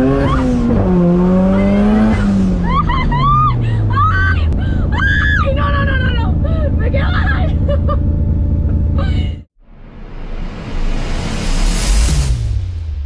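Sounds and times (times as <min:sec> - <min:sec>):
car engine droning: 0:00.0 - 0:12.8
woman shrieking with laughter: 0:01.5 - 0:05.7.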